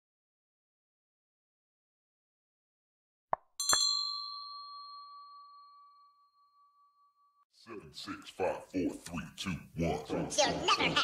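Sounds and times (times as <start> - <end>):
notification bell ding: 3.6 - 6.9.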